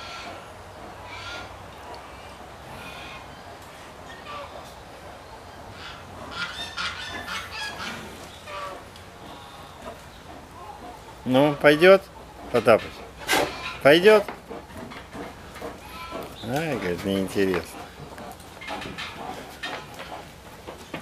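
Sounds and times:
honking bird calls: 0.0s - 1.6s, 5.3s - 14.0s.

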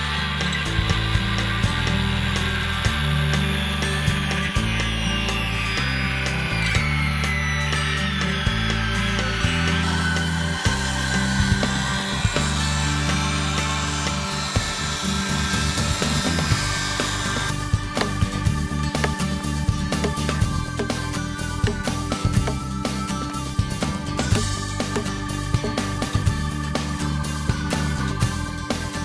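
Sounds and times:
background music with bass line: 0.0s - 29.0s
circular saw cutting timber: 0.0s - 29.0s.

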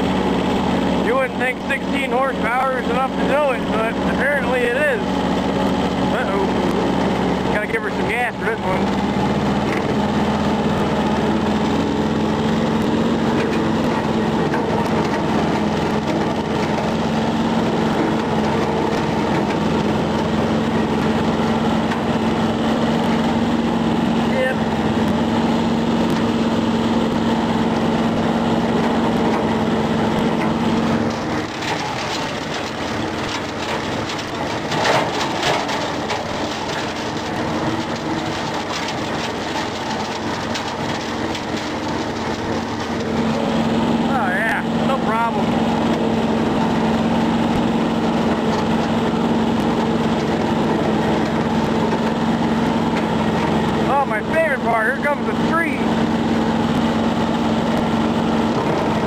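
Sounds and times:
rotary cutter crackling through brush: 0.0s - 59.0s
tractor diesel engine running hard: 0.0s - 59.0s.

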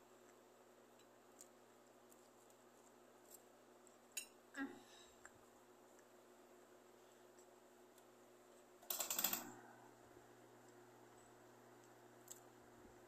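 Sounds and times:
steady low hum: 0.0s - 13.0s
rapid clicking: 8.8s - 9.5s.

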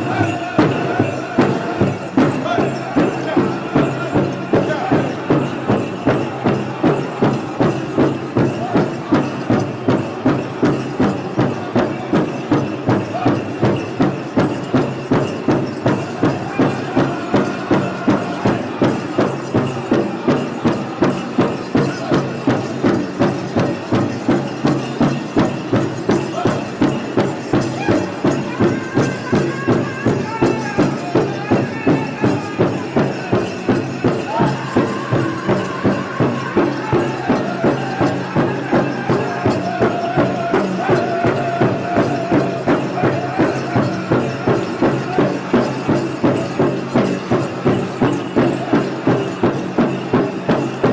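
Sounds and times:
high singing voices: 0.0s - 14.0s, 14.7s - 25.5s, 26.3s - 46.7s
steady drumbeat: 0.0s - 50.9s.

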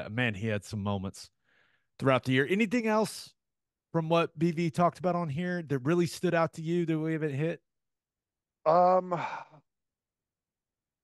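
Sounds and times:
breathy sigh: 9.1s - 9.7s.

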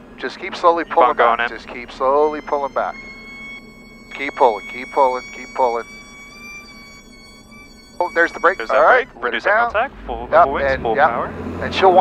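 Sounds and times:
stall warning horn steady tone: 0.0s - 11.2s.

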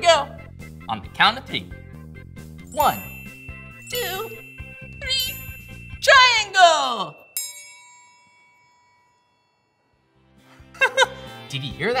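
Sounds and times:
metal triangle ringing: 2.7s - 10.0s.

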